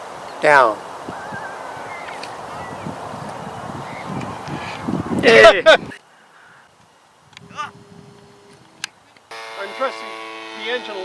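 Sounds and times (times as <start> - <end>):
steady rushing noise: 0.0 - 6.0
faint wavering bird calls: 1.0 - 4.9, 6.0 - 6.7.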